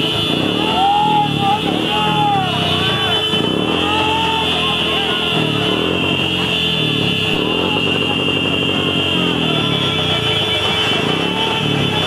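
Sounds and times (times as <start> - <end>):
men shouting slogans: 0.6 - 5.5.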